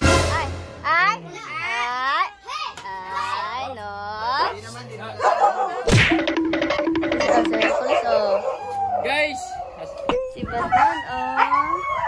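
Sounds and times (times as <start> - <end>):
huskies howling: 7.6 - 12.0.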